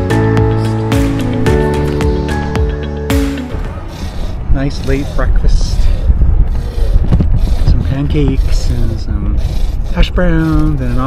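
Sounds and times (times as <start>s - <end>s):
wind buffeting microphone: 3.5s - 11.0s.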